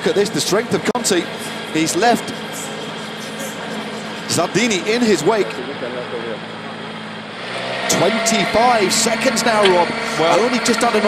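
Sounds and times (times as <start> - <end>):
race motorcycle engine: 0.0 - 11.0.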